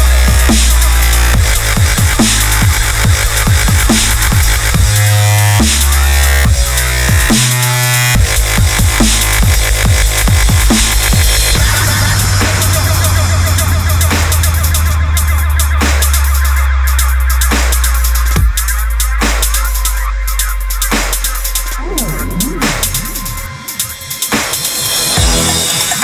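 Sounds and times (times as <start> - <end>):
dubstep music: 0.0 - 26.0.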